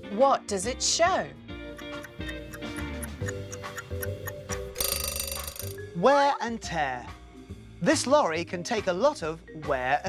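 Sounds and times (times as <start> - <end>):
light background music: 0.0 - 10.0
clock ticking: 1.7 - 5.8
alarm clock bell ringing: 4.8 - 5.8.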